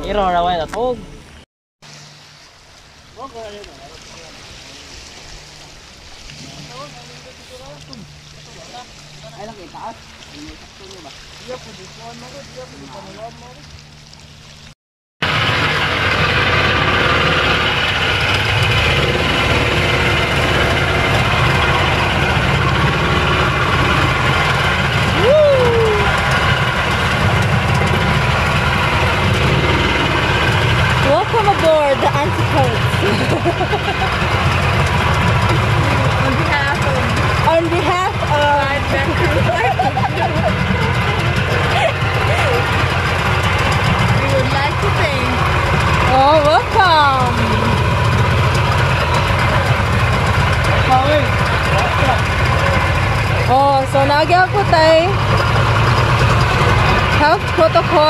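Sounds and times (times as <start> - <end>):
motorboat engine running: 0.0 - 58.0
rushing water: 0.0 - 58.0
wind: 0.0 - 58.0.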